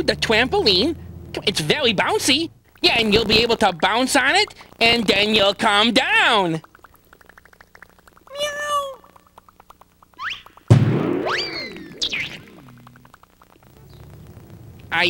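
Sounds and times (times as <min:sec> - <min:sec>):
springy boing with rising whistle: 0:06.6 - 0:08.4, 0:09.0 - 0:13.3
cartoon cat meow: 0:08.3 - 0:09.2.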